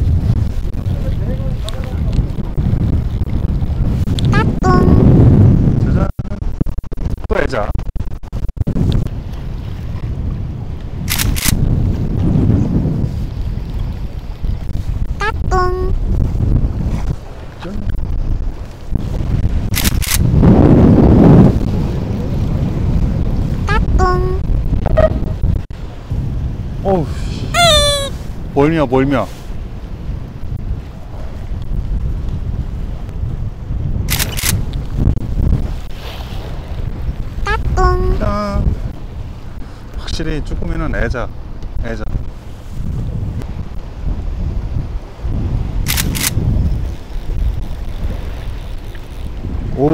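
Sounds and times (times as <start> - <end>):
wind buffeting microphone: 0.0 - 49.9
sharp clicks: 11.1 - 11.6, 19.7 - 20.2, 34.1 - 34.7, 45.9 - 46.4.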